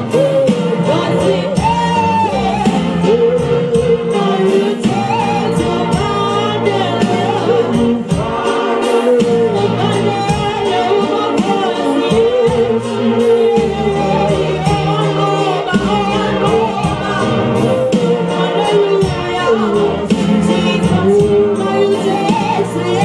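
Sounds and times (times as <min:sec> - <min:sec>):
instrumental accompaniment with beat: 0:00.0 - 0:23.0
woman singing into a microphone: 0:00.0 - 0:23.0.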